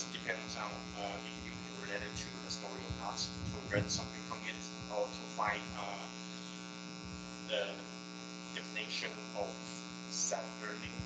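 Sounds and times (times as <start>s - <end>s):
person speaking: 0.0s - 6.6s, 7.5s - 7.9s, 8.6s - 11.0s
electrical hum and buzz: 0.0s - 11.0s.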